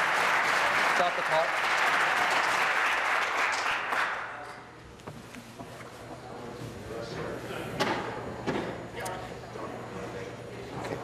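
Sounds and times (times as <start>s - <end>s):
murmur of voices in a hall: 0.0s - 11.0s.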